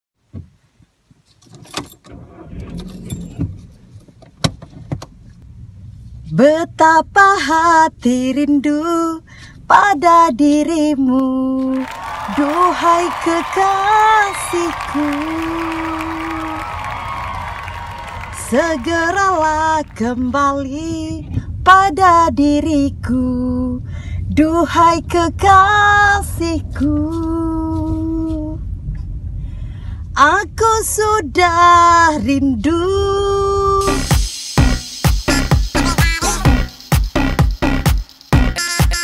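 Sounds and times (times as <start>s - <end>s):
low steady rumble: 2.1s - 38.5s
woman singing unaccompanied: 6.3s - 16.7s, 18.3s - 28.6s, 30.2s - 34.8s.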